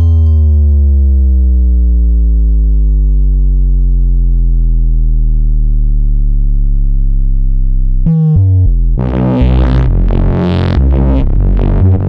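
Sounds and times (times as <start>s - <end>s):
deep synthesized note sliding down: 0.0s - 12.0s.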